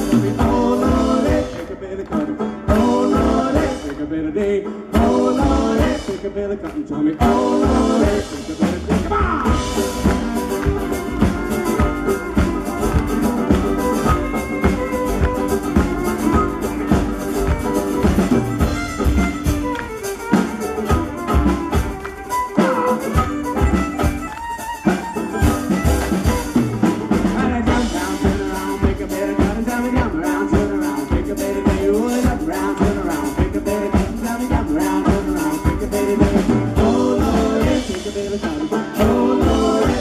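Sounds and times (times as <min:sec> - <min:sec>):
folk band playing: 0:00.0 - 0:40.0
fiddle lead: 0:07.2 - 0:40.0.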